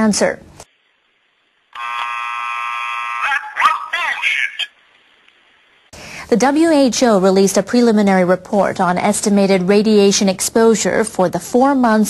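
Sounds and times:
steady buzzing tone: 0.7s - 3.6s.

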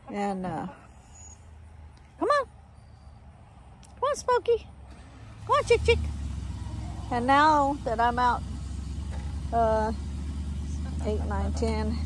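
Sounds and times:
distant engine rumble: 0.0s - 12.0s.

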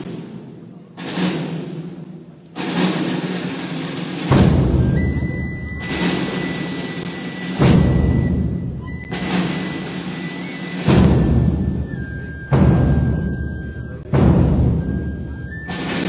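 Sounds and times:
band playing funeral march: 0.0s - 16.0s
heavy drum beats: 0.0s - 16.0s.

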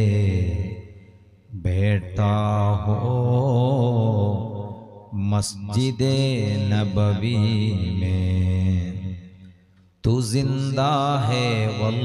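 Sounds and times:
man chanting devotional verse: 0.0s - 12.0s.

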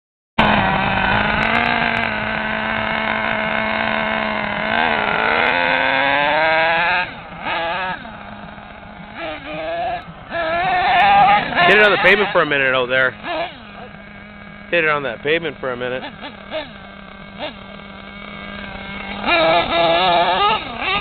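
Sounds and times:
toy truck engine revving: 0.4s - 21.0s.

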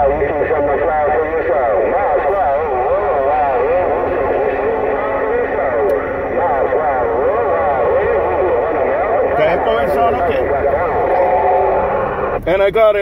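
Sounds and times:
garbled radio voices: 0.0s - 13.0s.

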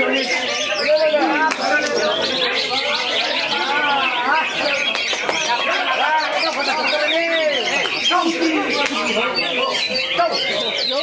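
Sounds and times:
other birds: 0.0s - 11.0s
voices: 0.0s - 11.0s.

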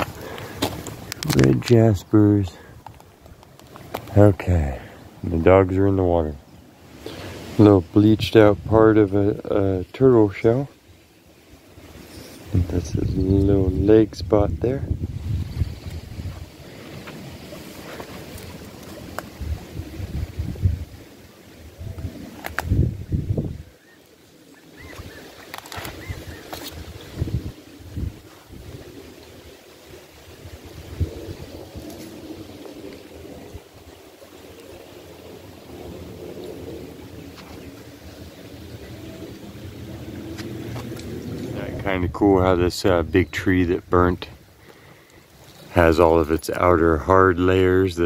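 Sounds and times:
creek water over rocks: 0.0s - 12.8s, 16.0s - 22.8s, 23.7s - 48.0s
wind buffeting microphone: 12.4s - 23.8s, 24.8s - 44.6s.

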